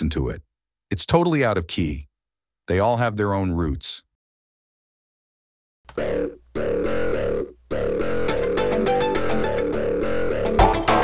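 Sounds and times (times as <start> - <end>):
clashing layered music loops: 7.8 - 11.0.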